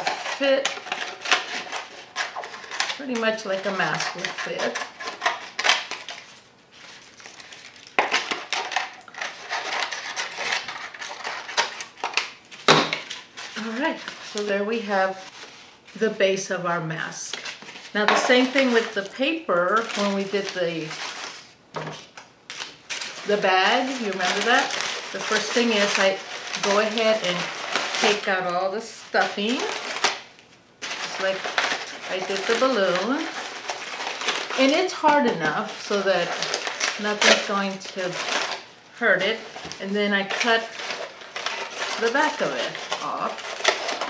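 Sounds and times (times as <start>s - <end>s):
scissors cutting stiff paper: 0.0s - 6.2s, 39.6s - 44.0s
dry paper crinkling: 0.0s - 16.1s, 17.2s - 44.0s.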